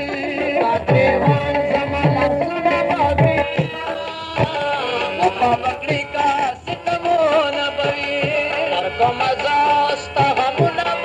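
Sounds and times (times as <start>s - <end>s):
hand drum beats: 0.0s - 7.2s
ornamented folk melody: 0.0s - 11.0s.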